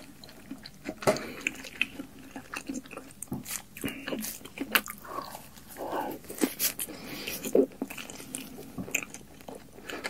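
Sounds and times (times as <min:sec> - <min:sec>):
lip smacks and chewing: 0:00.0 - 0:10.0.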